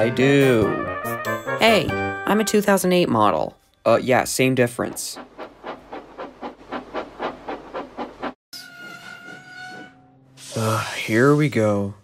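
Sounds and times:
steam locomotive chuffing: 4.4s - 11.3s.

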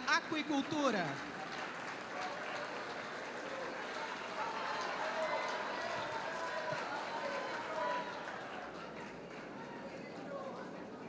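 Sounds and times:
murmur of audience voices: 1.2s - 11.0s.

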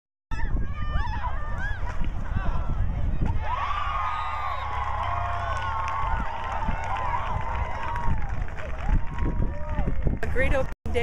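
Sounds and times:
people cheering and shrieking: 0.4s - 9.8s.

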